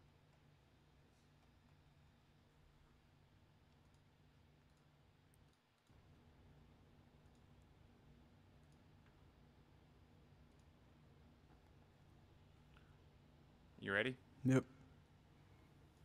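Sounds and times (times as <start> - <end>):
faint low room hum: 0.0 - 16.0
faint clicks: 3.6 - 6.0, 7.2 - 7.8, 8.5 - 9.2, 10.4 - 10.8.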